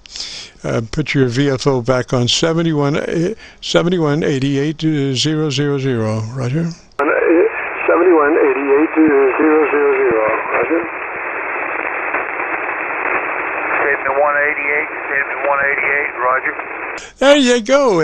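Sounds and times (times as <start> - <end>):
man talking over radio: 0.2 - 11.0, 13.4 - 18.0
radio static hiss: 6.1 - 17.3.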